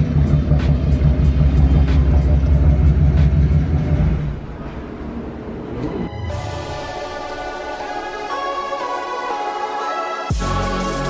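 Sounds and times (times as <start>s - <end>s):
car engine idling: 0.0s - 8.9s.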